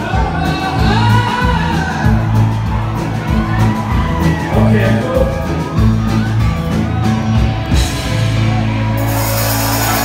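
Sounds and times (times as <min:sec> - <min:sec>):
rock band playing live: 0:00.0 - 0:10.0.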